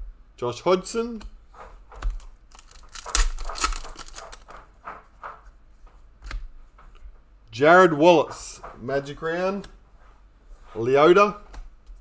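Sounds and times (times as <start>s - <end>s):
cards rustling and clicking: 1.6s - 4.7s
card pack wrapper tearing: 2.5s - 4.4s.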